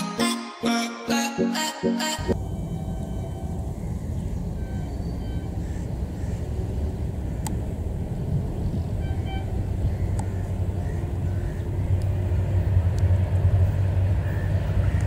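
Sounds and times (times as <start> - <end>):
locomotive rumbling: 2.2 - 15.0.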